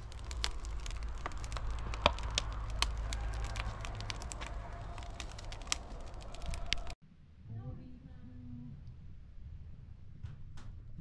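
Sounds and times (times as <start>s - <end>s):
wood fire crackling: 0.0s - 7.0s
low rumble: 0.0s - 11.0s.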